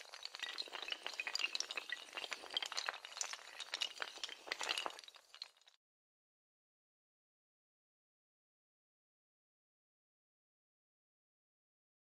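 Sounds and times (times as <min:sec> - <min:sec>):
tiles toppling like dominoes: 0:00.0 - 0:05.8.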